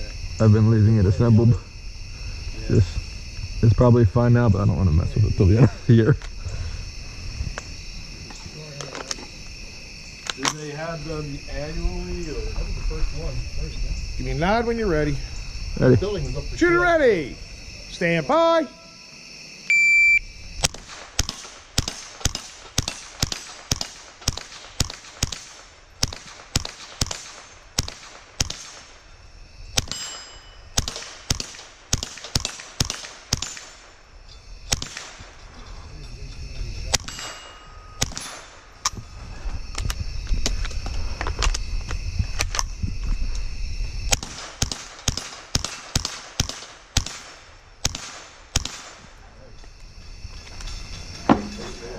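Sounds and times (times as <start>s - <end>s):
shot timer beep: 19.7s - 20.2s
rapid pistol shots: 20.6s - 29.0s, 29.8s - 30.2s, 30.8s - 34.0s, 34.7s - 35.3s, 36.9s - 38.7s, 44.1s - 49.1s
steel plates ringing: 29.9s - 30.8s, 35.6s - 38.5s.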